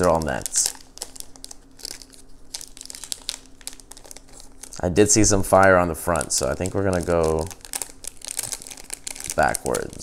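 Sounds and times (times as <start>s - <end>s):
plastic crinkling: 0.0s - 10.0s
cardboard cards being handled: 6.1s - 10.0s.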